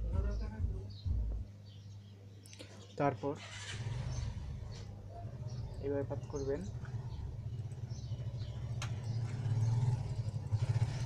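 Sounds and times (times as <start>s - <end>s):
engine rumbling with pulsing throb: 0.0s - 2.0s, 3.6s - 11.0s.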